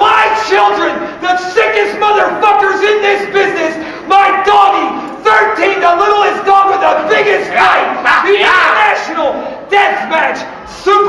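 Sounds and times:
men yelling wordless cries: 0.0 - 11.0.

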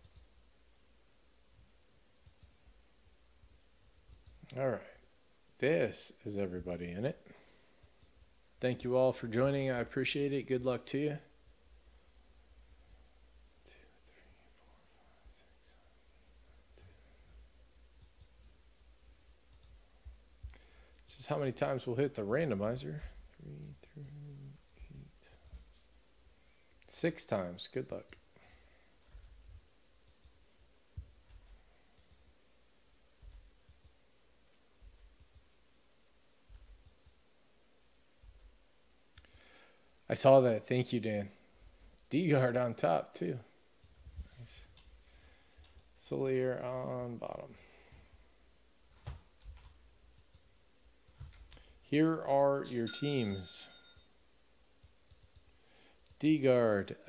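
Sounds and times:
computer mouse clicks: 0.0 - 0.3, 2.2 - 2.6, 4.1 - 4.6, 18.0 - 18.4, 19.5 - 19.8, 30.0 - 30.4, 32.0 - 32.2, 33.6 - 34.0, 35.1 - 35.5, 36.6 - 37.2, 49.0 - 51.6, 54.8 - 56.2
faint clicks: 4.1 - 4.6, 19.5 - 21.1, 30.0 - 30.4, 35.1 - 35.5
man speaking: 4.4 - 5.0, 5.6 - 7.3, 8.6 - 11.3, 21.0 - 25.4, 26.9 - 28.2, 42.1 - 43.5, 44.4 - 44.7, 46.0 - 47.7, 51.9 - 53.8, 56.2 - 57.0.

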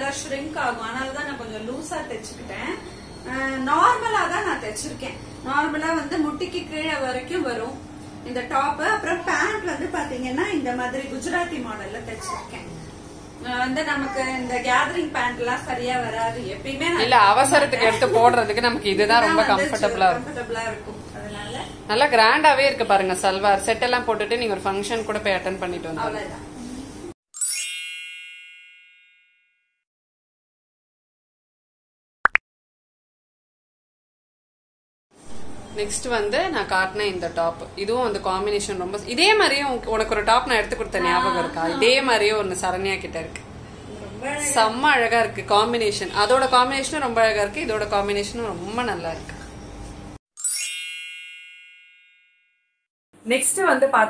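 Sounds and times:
high-pitched chime: 27.4 - 29.7, 50.4 - 52.7
bell-like ding: 27.4 - 29.8, 50.4 - 52.8.

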